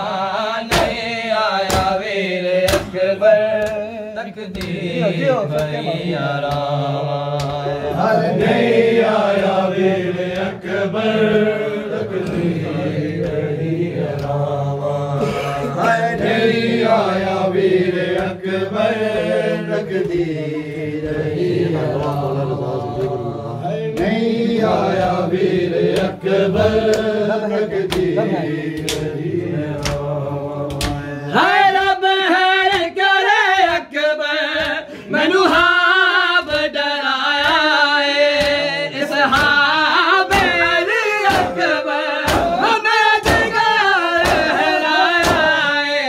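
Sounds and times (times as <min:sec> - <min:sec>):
men chanting a lament: 0:00.0 - 0:46.0
hands slapping bare chests: 0:00.7 - 0:15.0, 0:15.7 - 0:31.9, 0:37.4 - 0:45.6.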